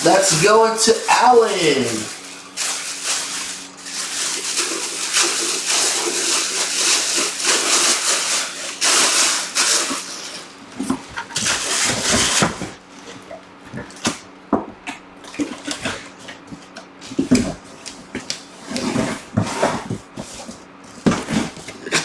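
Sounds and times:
plastic bag crinkling: 0:00.1 - 0:10.4.

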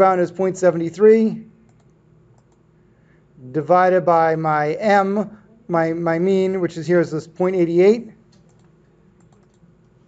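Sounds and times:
computer mouse clicks: 0:01.6 - 0:02.7, 0:08.3 - 0:09.9.

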